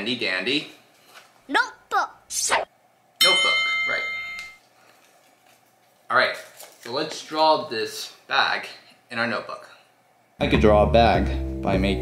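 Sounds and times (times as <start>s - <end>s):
bright bell-like chime: 3.2s - 4.6s.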